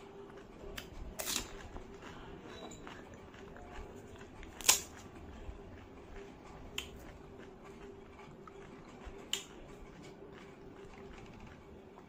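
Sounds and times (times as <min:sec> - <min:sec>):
crisp shell cracking: 0:01.2 - 0:01.6, 0:04.5 - 0:05.0.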